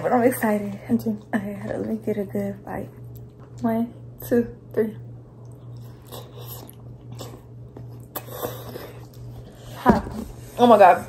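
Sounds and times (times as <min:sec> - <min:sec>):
slurping and chewing noodles: 0:05.4 - 0:09.6.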